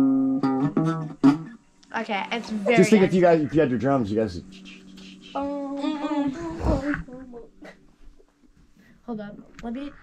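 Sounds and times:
voice trailing off: 0:04.4 - 0:07.2.

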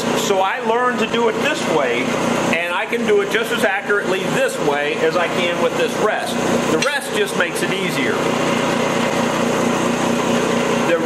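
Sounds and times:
bench grinder humming: 0:00.0 - 0:11.0.

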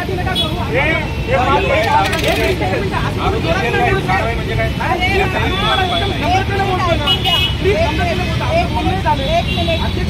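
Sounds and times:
low rumble of street noise: 0:00.0 - 0:10.0.

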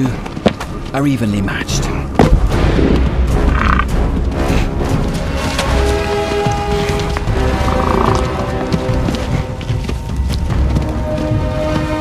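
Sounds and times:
documentary music: 0:00.0 - 0:12.0.

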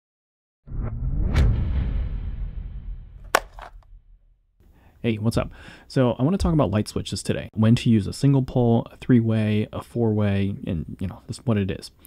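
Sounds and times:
sharp click: 0:03.3 - 0:03.8.

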